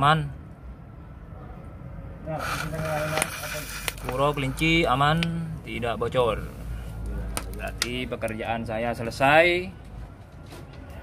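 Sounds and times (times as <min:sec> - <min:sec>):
broad hiss: 0:02.4 - 0:04.8.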